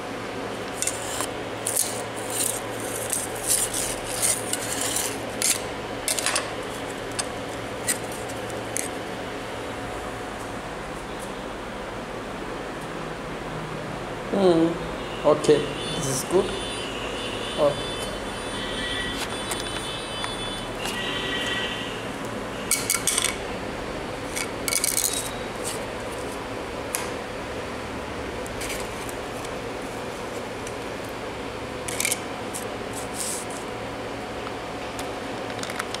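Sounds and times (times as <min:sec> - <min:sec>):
steady background hum: 0:00.0 - 0:36.0.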